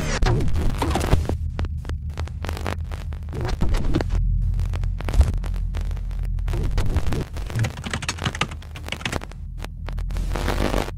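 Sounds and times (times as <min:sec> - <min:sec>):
deep throbbing bass hum: 0:00.0 - 0:10.9
glitchy electronic clicks: 0:05.0 - 0:10.9.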